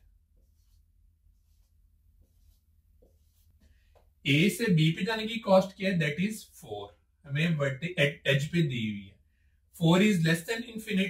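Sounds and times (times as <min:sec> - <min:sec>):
marker writing on whiteboard: 0:00.2 - 0:04.2.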